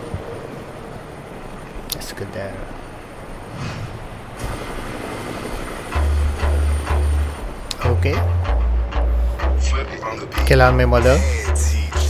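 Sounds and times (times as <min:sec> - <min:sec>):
deep pulsing bass notes: 0:04.4 - 0:12.0
hip-hop track: 0:07.7 - 0:12.0.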